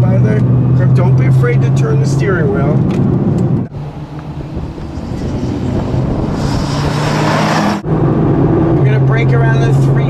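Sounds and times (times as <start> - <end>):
sports car engine approaching: 0.0 - 10.0.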